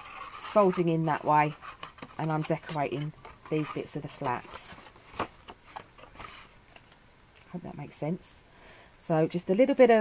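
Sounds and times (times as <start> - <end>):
paper rustling: 0.0 - 6.5.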